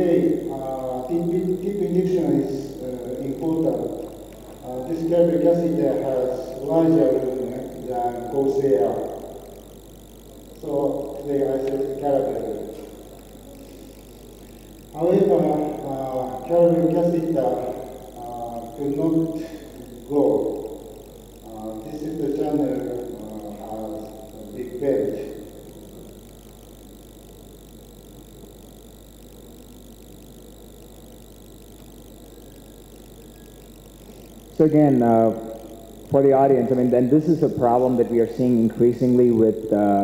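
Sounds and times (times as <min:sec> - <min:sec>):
low hum and hiss: 0:00.0 - 0:40.0.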